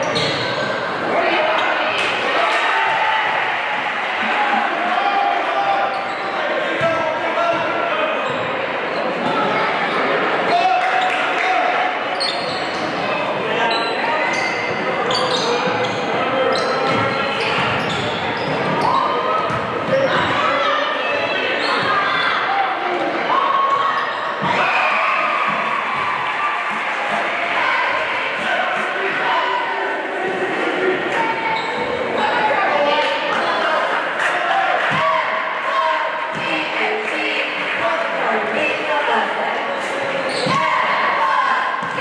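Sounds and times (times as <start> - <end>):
sneakers squeaking: 0.0 - 0.9, 5.8 - 7.6, 8.2 - 10.0, 12.1 - 20.5, 21.4 - 22.4, 31.3 - 32.3, 39.7 - 40.8
spectators talking and shouting: 0.0 - 42.0.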